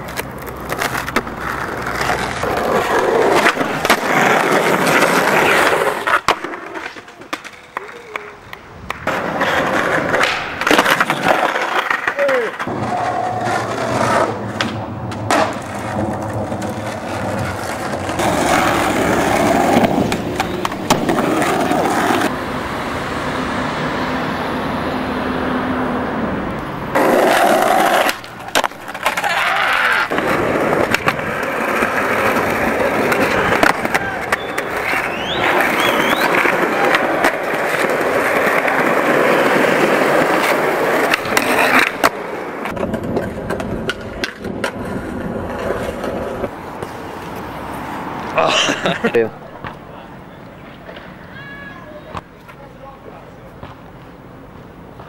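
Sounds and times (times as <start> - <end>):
skateboard clacks: 0.0 - 22.3, 26.6 - 47.0, 49.5 - 52.8
skateboard wheels rolling on concrete: 0.0 - 55.0.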